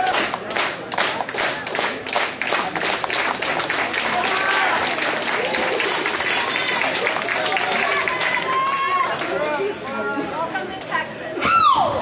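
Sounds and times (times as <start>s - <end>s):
crowd clapping in rhythm: 0.0s - 10.0s
crowd shouts: 4.1s - 9.6s, 11.4s - 12.0s.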